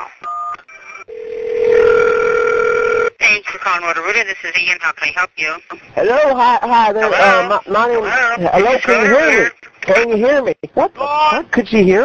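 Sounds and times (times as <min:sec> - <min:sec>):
telephone ringback tone: 0:00.3 - 0:03.1.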